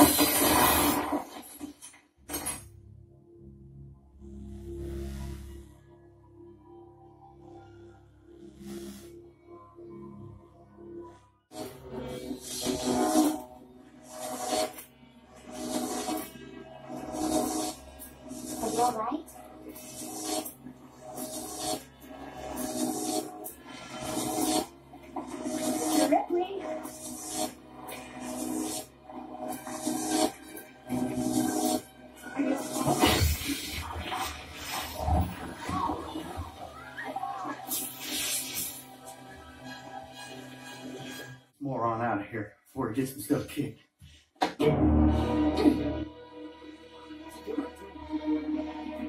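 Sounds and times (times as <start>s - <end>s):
electric arc buzzing and crackling: 0.0s - 1.8s, 17.0s - 36.7s, 37.7s - 39.3s
film music: 2.8s - 43.4s, 44.5s - 49.0s.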